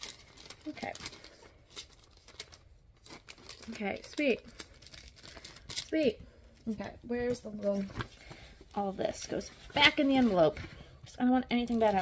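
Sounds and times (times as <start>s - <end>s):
paper and plastic rustling: 0.0s - 10.9s, 11.5s - 12.0s.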